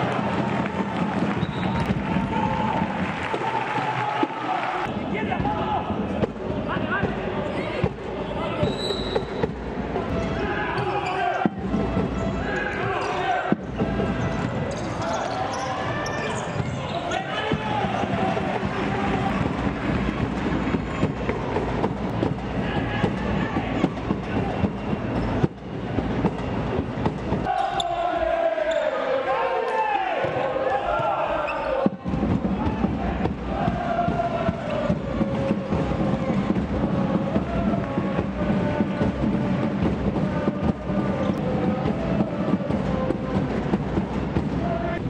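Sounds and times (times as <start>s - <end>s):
shouts echoing in a sports hall: 0.0s - 25.3s, 27.4s - 45.0s.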